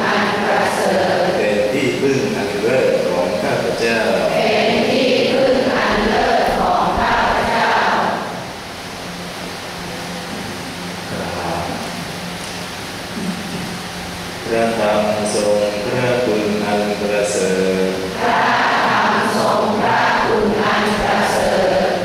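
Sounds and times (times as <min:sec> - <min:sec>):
chanting over microphone: 0:00.0 - 0:08.6, 0:14.4 - 0:22.0
low steady hum: 0:00.0 - 0:22.0.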